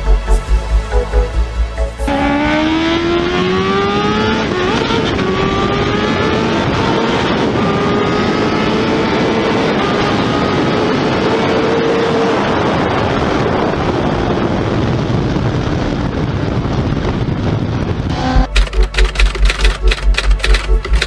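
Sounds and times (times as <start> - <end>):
motorcycle engine revving hard: 2.1 - 14.0
wind rush: 2.1 - 18.6.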